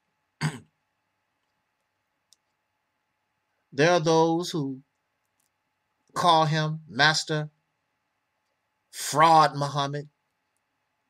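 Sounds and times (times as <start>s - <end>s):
man clearing his throat: 0.4s - 0.8s.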